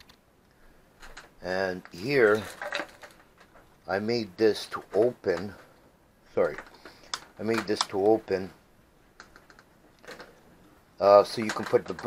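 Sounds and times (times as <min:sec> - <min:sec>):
light clicks of wooden parts: 0:04.7 - 0:05.8, 0:06.4 - 0:08.2, 0:11.3 - 0:12.0.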